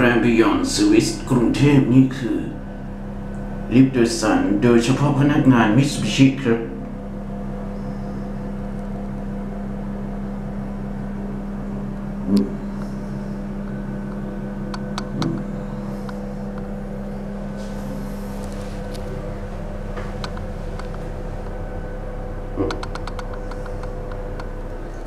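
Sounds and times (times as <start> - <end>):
elevator hum: 0.0 - 25.0.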